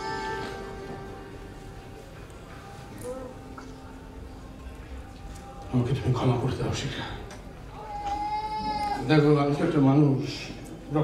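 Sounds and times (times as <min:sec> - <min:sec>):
high-pitched note: 0:00.0 - 0:01.9.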